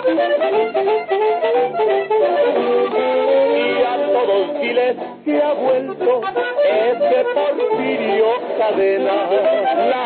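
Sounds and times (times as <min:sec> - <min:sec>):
accordion-led instrumental music: 0:00.0 - 0:10.0.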